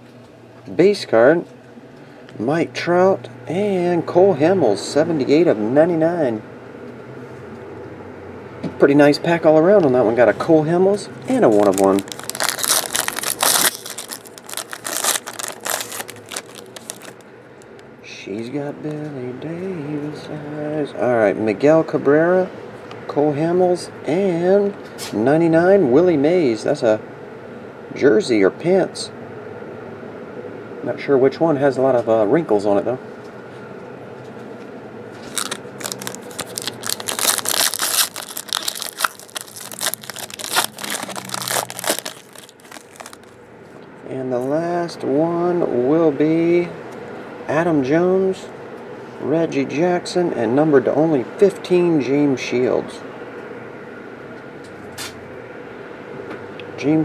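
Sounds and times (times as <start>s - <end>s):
foil wrapper crinkling: 11.3s - 17.2s, 35.2s - 43.4s.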